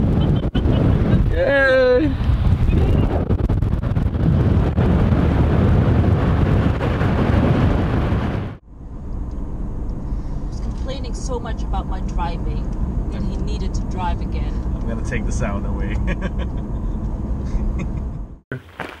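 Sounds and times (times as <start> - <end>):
rushing wind: 0.0 - 18.4
car engine and tyres humming: 0.0 - 19.0
road noise: 0.0 - 19.0.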